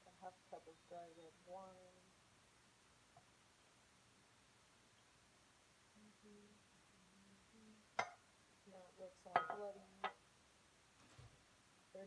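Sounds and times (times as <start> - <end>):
woman humming: 6.0 - 8.0.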